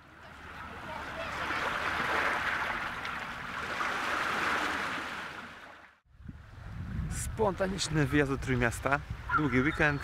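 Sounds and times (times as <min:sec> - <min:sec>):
sea water washing against shore: 0:00.1 - 0:06.0.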